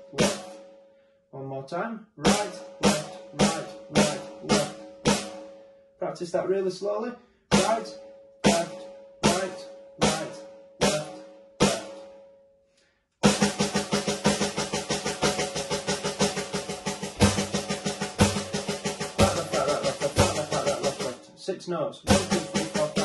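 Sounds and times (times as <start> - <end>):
electronic snare drum strokes: 0.0 - 0.8, 2.2 - 5.6, 7.5 - 12.2, 13.2 - 21.3, 22.1 - 23.0.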